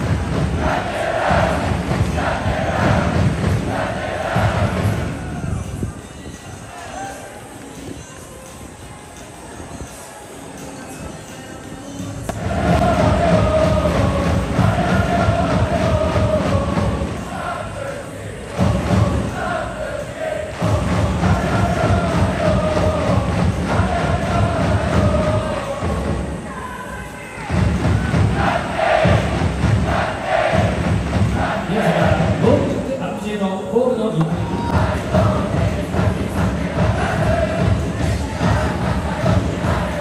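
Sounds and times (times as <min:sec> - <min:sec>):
pounding drum beat: 0:00.0 - 0:05.3, 0:12.3 - 0:17.5, 0:18.5 - 0:19.6, 0:20.5 - 0:26.4, 0:27.4 - 0:32.9, 0:34.2 - 0:40.0
crowd chanting in unison: 0:00.0 - 0:05.8, 0:06.5 - 0:07.6, 0:12.3 - 0:33.0, 0:34.1 - 0:40.0.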